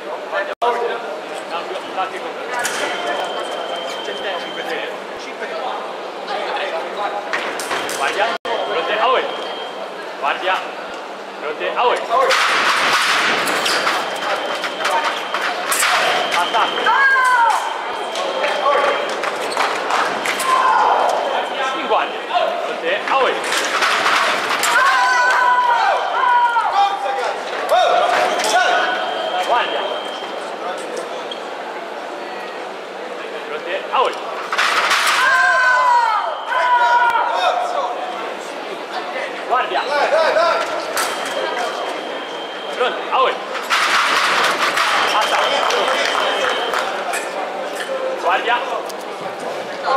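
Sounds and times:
scoring machine tone: 0:13.8 - 0:19.1, 0:28.4 - 0:30.5
fencers shouting: 0:14.2 - 0:19.1, 0:20.2 - 0:21.6, 0:24.5 - 0:29.4, 0:35.1 - 0:37.7.

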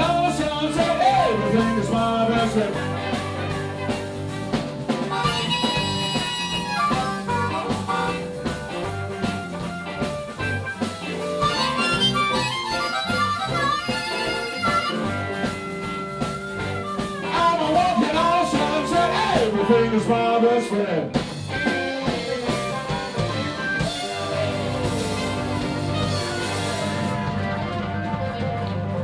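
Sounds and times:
harmonica solo: 0:00.0 - 0:20.5, 0:21.4 - 0:28.9
electric guitars and drums: 0:00.0 - 0:29.0.

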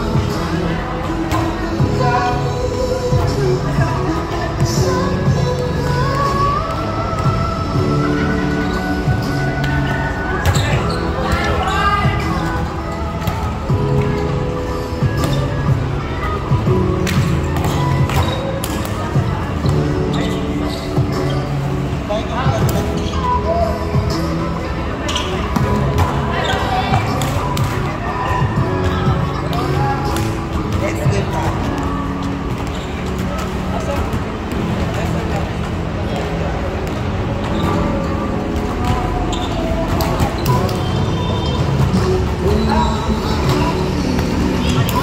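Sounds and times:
background music: 0:00.0 - 0:45.0
players' voices: 0:00.0 - 0:45.0.

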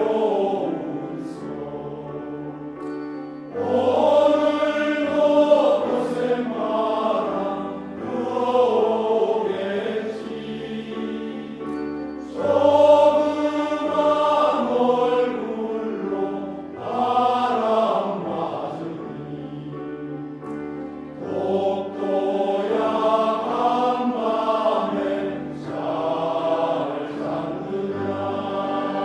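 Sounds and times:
male choir singing in harmony: 0:00.0 - 0:29.0.

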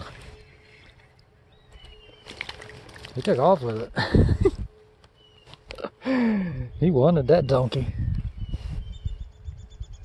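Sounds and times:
creek water: 0:00.0 - 0:04.2
wind: 0:00.0 - 0:10.0.

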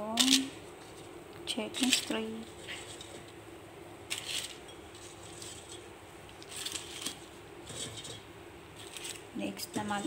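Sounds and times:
paper rustling and crackling: 0:04.1 - 0:05.8, 0:06.4 - 0:08.2, 0:08.8 - 0:10.0.

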